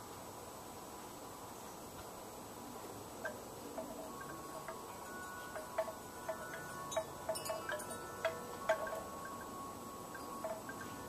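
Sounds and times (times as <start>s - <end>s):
chimes ringing: 3.3s - 11.0s.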